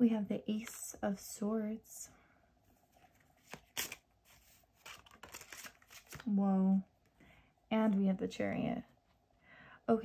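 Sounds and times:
cards rustling: 2.9s - 6.4s.

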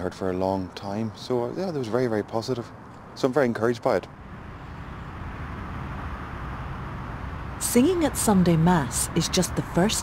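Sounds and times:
distant street traffic rumble: 0.0s - 10.0s.

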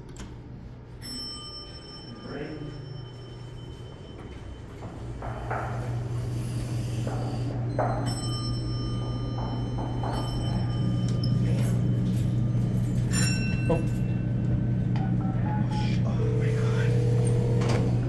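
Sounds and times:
elevator humming: 0.0s - 18.0s
footsteps: 3.1s - 8.1s.

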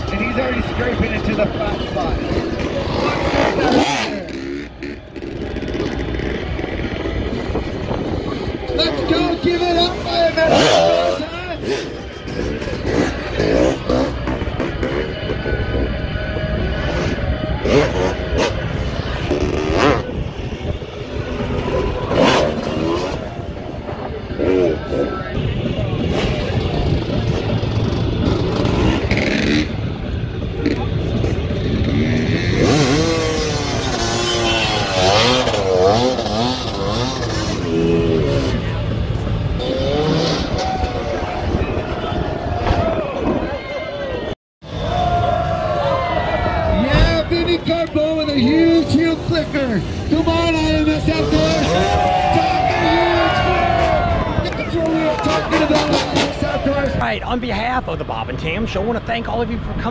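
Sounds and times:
dirt bike engines revving: 0.0s - 59.9s.

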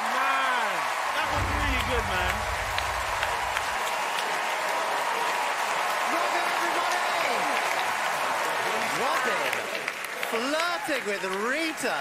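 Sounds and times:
voices calling out and cheering: 0.0s - 3.8s
audience applauding: 0.0s - 12.0s.

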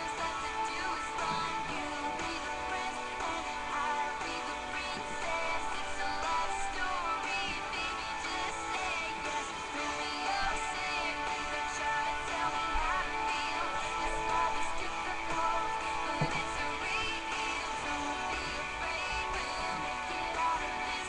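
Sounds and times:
woman singing: 0.0s - 21.0s.

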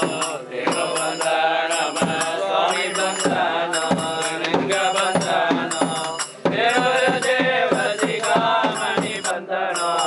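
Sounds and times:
percussive strikes: 0.0s - 10.0s
voices chanting: 0.0s - 10.0s.

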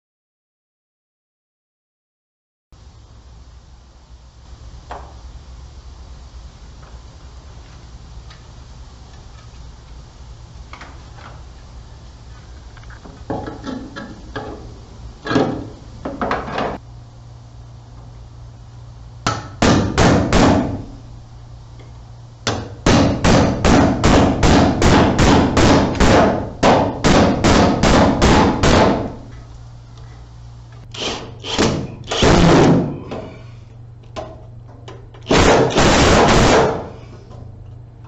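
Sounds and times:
hammer striking nails: 19.3s - 20.8s, 22.5s - 29.2s, 35.2s - 36.9s.

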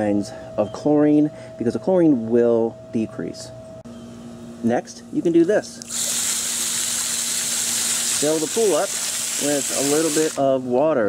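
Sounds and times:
water spraying onto pool: 5.9s - 10.5s.

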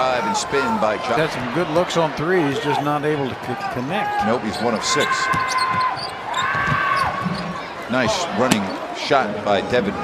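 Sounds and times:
arena crowd noise: 0.0s - 10.0s
sneaker squeak on hardwood: 5.2s - 7.1s.

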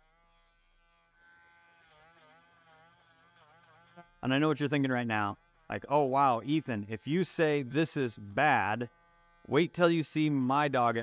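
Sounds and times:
nail grinder buzzing: 0.0s - 10.7s.

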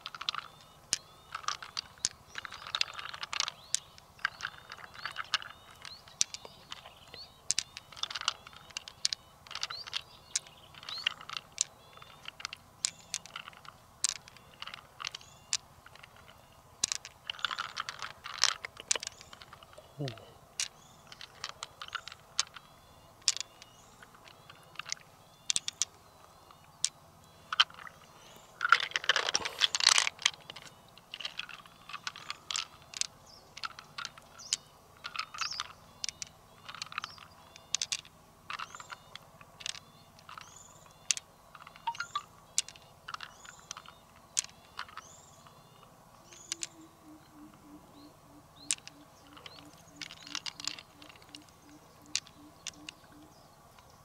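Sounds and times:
pearls clicking together: 0.0s - 54.0s.

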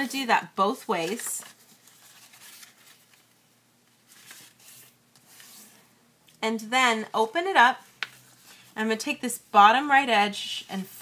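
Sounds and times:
paper rustling and creasing: 0.8s - 5.8s.

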